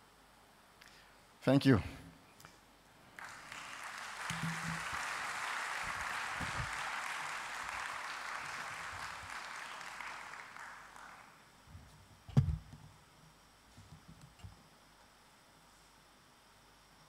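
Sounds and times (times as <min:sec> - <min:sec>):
audience applause: 0:03.2 - 0:11.4.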